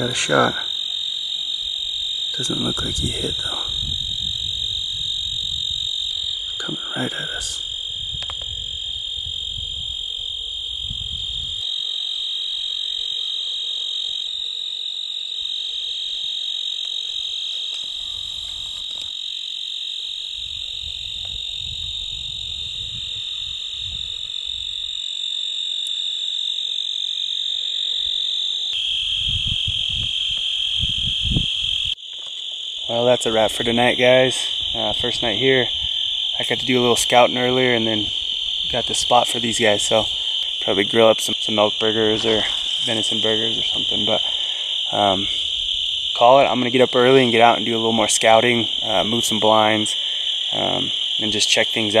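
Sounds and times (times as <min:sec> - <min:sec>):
crickets and insects chirring: 0:00.0 - 0:52.0
wind rumble on microphone: 0:01.9 - 0:06.6, 0:07.3 - 0:11.6, 0:20.4 - 0:24.9, 0:29.1 - 0:32.0, 0:34.4 - 0:37.2.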